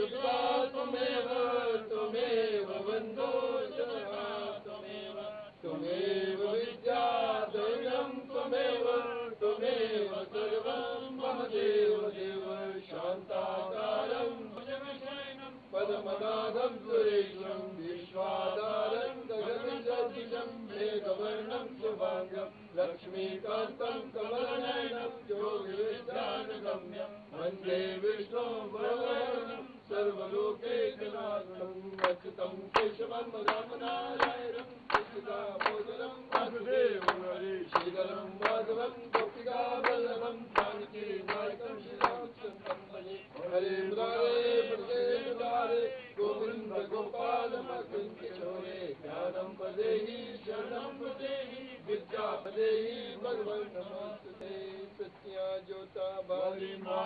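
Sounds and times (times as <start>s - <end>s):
men chanting hymn verses: 0.0s - 57.0s.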